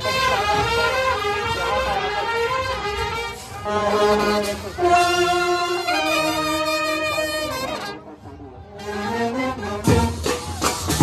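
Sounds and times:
marching brass band: 0.0s - 11.0s.

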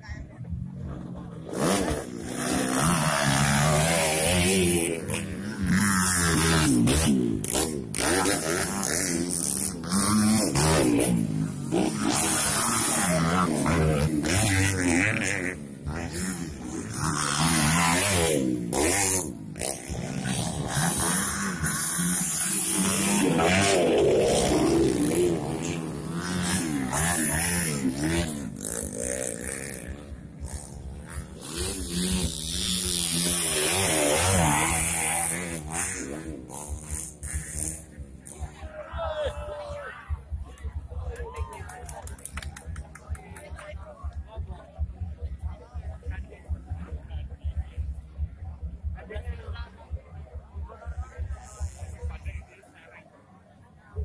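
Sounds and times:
dirt bike engines revving: 0.0s - 52.9s.

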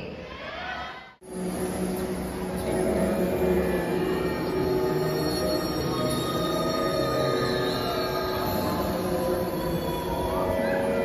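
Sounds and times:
music of long held tones: 1.2s - 11.0s.

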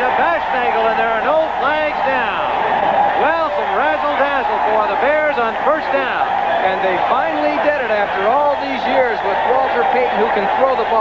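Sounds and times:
crowd noise: 0.0s - 11.0s
men commentating: 0.0s - 11.0s.

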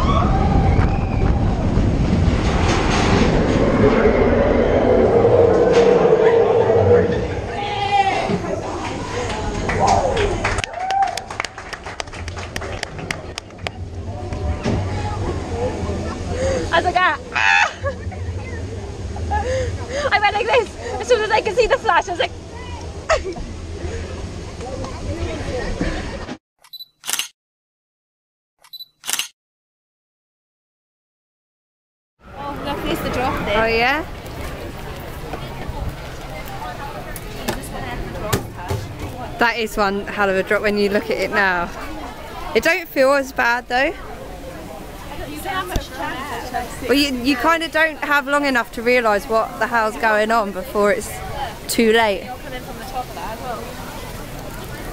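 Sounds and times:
low rumble: 0.0s - 10.6s, 11.6s - 25.4s
roller coaster rumbling: 0.0s - 26.4s, 32.2s - 54.9s
faint voices of passers-by: 1.6s - 10.7s, 11.6s - 26.4s, 32.2s - 54.9s.

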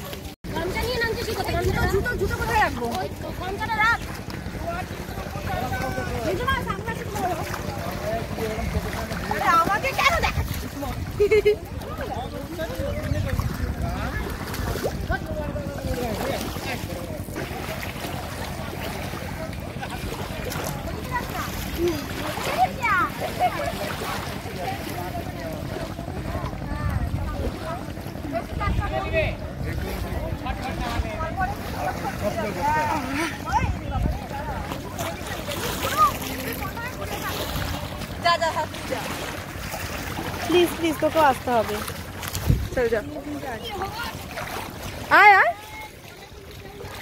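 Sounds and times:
people talking and calling out: 0.0s - 47.0s
wind on microphone: 1.0s - 3.0s, 8.8s - 16.6s, 42.2s - 44.2s.

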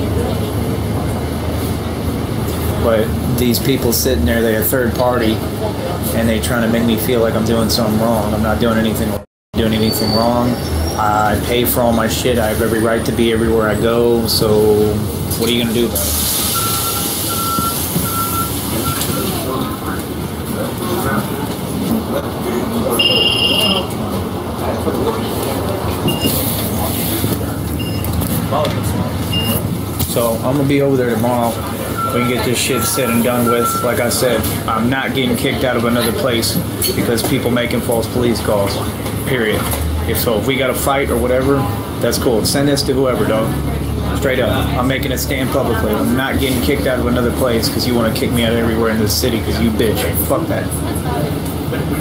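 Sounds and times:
bus rumbling in motion: 0.0s - 52.0s
short high beeps: 16.4s - 19.4s, 23.0s - 24.0s, 29.3s - 29.6s, 31.6s - 34.1s.

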